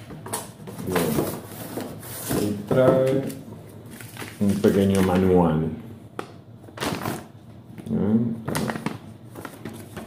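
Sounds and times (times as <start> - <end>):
paper rustling and crackling: 0.0 - 5.4, 8.5 - 10.0.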